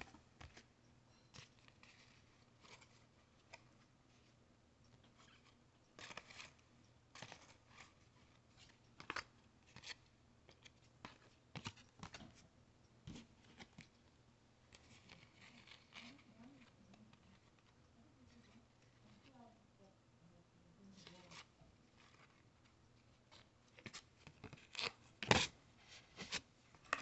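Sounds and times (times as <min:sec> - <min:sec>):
cards clicking and rustling: 0:01.4 - 0:03.8, 0:05.0 - 0:12.4, 0:13.1 - 0:14.0, 0:23.0 - 0:25.5, 0:26.1 - 0:27.0.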